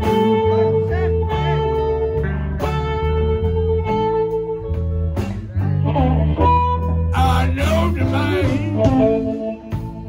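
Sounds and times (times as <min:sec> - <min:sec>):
electric blues band playing: 0:00.0 - 0:10.0.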